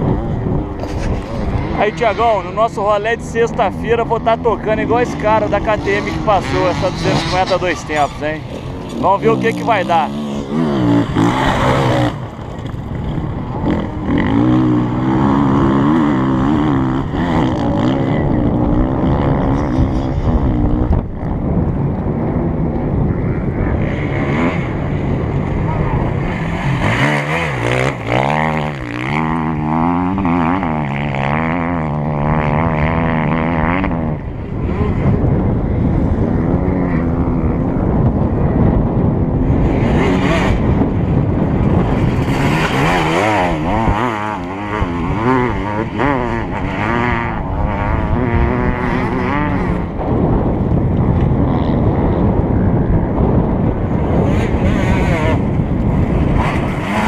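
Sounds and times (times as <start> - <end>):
motorcycles racing past revving: 0.0 - 57.0.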